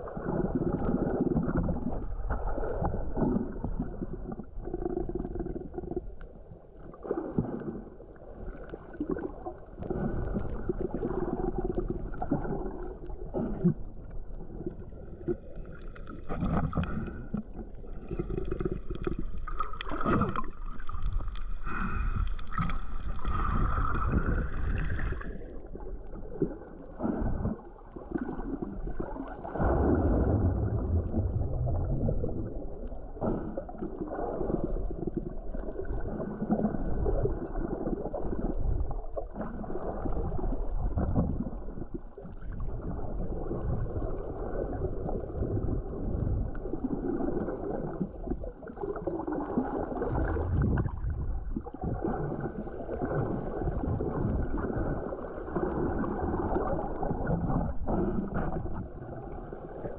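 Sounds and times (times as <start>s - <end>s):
muffled underwater water rushing: 0.0s - 59.9s.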